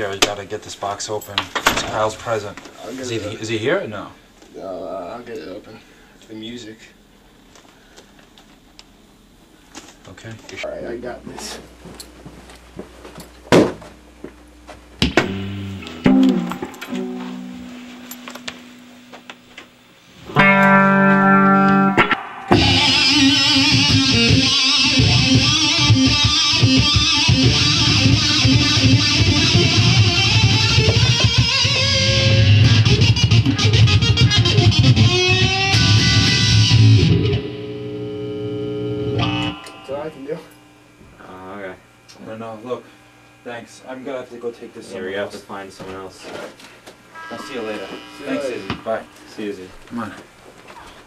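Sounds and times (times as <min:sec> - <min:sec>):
guitar clicks: 0:15.0 - 0:19.7, 0:20.3 - 0:37.6, 0:39.2 - 0:40.6
electric guitar through amplifier: 0:15.0 - 0:42.2, 0:47.1 - 0:49.9.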